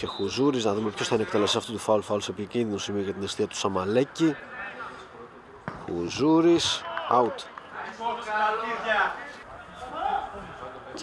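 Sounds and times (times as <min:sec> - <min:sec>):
low outdoor background noise: 0:00.0 - 0:11.0.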